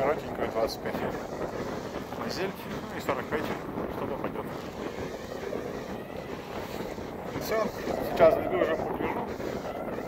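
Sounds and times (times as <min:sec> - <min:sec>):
small waves washing ashore: 0:00.0 - 0:10.0
wind on microphone: 0:00.0 - 0:10.0.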